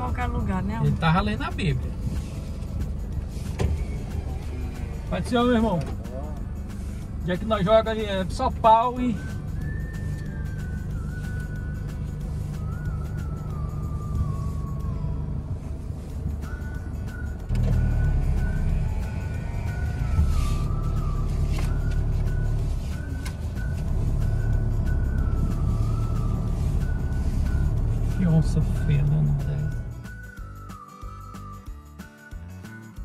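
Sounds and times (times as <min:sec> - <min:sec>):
engine and road rumble inside car: 0:00.0 - 0:30.5
background music: 0:00.0 - 0:33.0.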